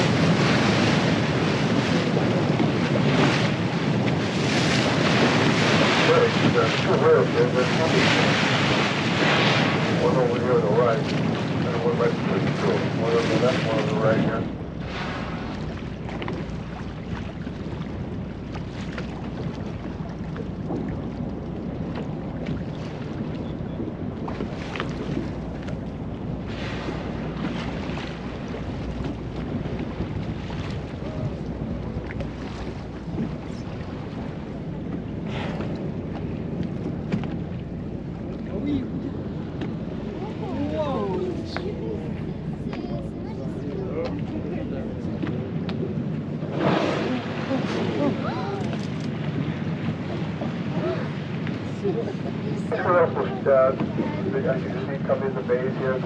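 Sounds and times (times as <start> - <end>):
boat engine running: 0.0 - 56.0
choppy sea wash: 0.0 - 56.0
wind buffeting microphone: 0.0 - 56.0.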